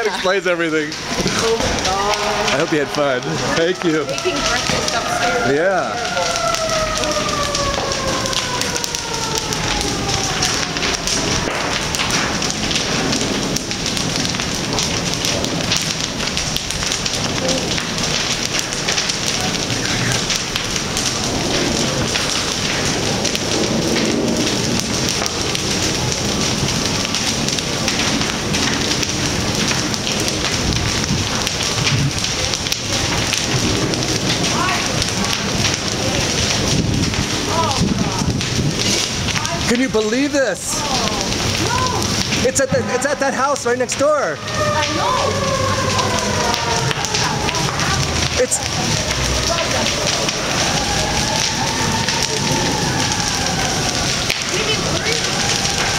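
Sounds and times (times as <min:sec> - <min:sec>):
fire crackling and rushing: 0:00.0 - 0:55.9.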